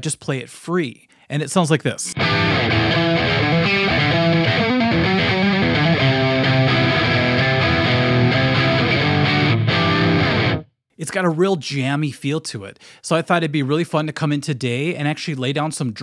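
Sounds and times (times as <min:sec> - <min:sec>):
electric guitar rock riff: 0:02.1 - 0:10.7.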